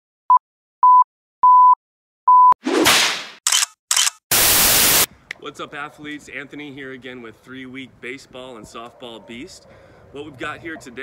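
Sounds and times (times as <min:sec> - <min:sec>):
sharp click: 0:02.9 - 0:04.2
burst of noise: 0:04.3 - 0:05.1
short bursts of hiss: 0:04.3 - 0:05.1.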